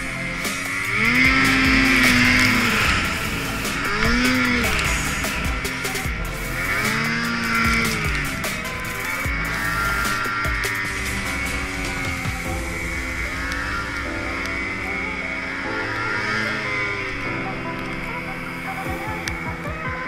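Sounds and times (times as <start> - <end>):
background music: 0.0 - 20.0
snowmobile engine revving: 0.0 - 20.0.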